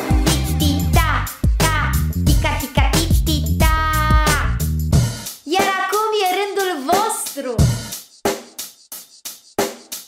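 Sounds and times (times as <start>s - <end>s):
drum kit kick and snare hits: 0.0s - 5.8s, 7.6s - 10.0s.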